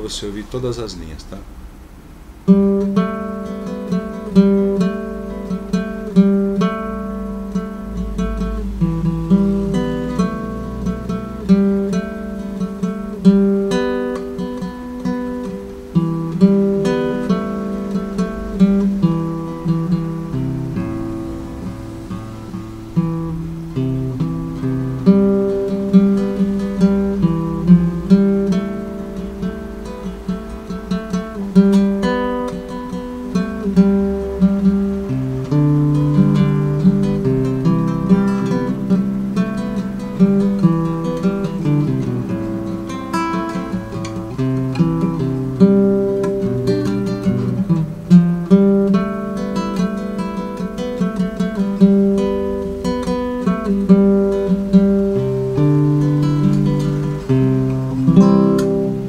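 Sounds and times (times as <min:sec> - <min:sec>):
classical guitar playing hymn melody: 0:01.4 - 0:59.0.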